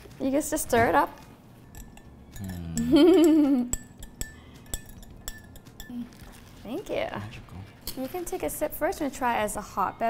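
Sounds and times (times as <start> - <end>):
metal spoon clinking glass: 1.6 - 6.4.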